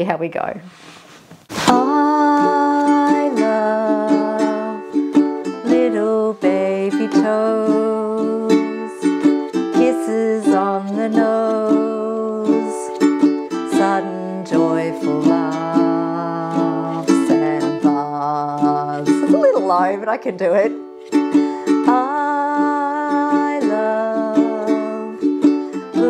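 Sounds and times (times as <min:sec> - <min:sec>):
ukulele strumming chords: 0:01.5 - 0:26.0.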